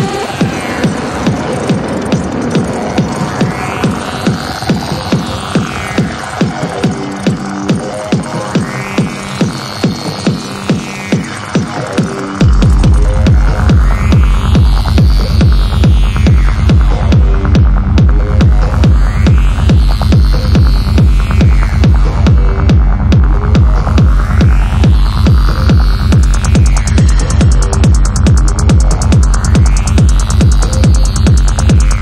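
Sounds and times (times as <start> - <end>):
droning low bass: 0.0 - 32.0
filtered synth sweep: 0.0 - 32.0
high percussion ticks: 0.0 - 32.0
techno kick drum: 0.0 - 32.0.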